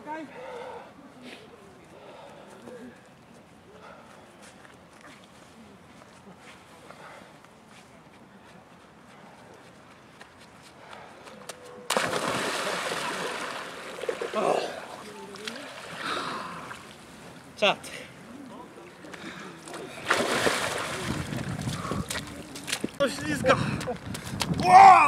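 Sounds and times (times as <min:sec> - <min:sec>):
loud splash into water: 0:11.9 - 0:14.4, 0:20.0 - 0:21.3.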